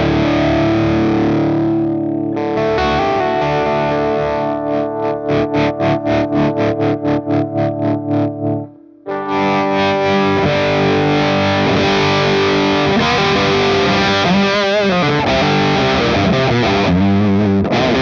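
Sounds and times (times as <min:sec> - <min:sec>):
electric guitar chord ringing: 0:00.0 - 0:18.0
quickly picked guitar notes: 0:00.0 - 0:18.0.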